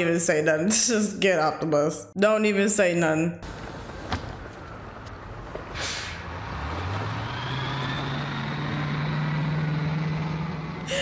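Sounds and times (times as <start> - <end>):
bus engine: 3.4 - 11.0
air brake hiss: 5.7 - 6.3.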